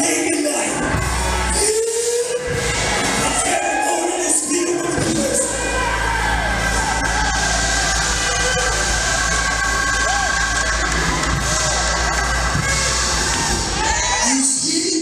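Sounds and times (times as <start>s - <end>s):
church praise music: 0.0s - 15.0s
congregation shouting and cheering: 0.0s - 15.0s.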